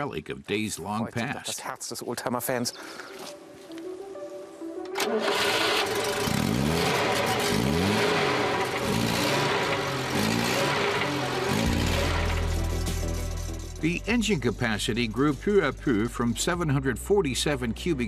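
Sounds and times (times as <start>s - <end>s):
car engine starting and revving: 4.9s - 15.7s.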